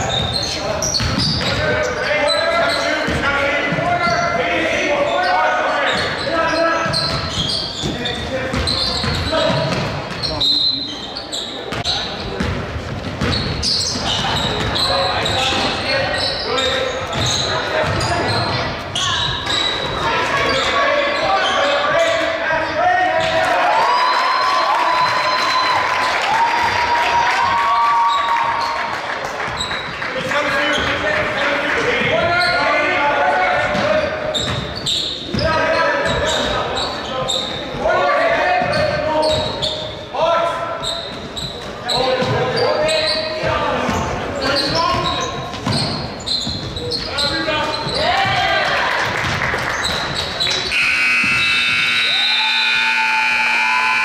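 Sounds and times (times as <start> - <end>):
players calling out: 49.8 - 54.0.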